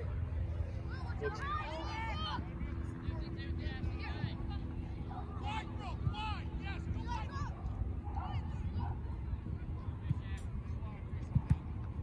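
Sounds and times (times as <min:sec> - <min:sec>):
distant shouting voices: 0:04.0 - 0:09.5.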